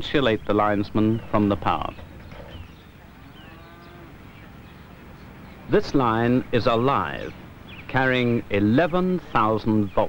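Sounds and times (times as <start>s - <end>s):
cow mooing: 2.8s - 4.5s.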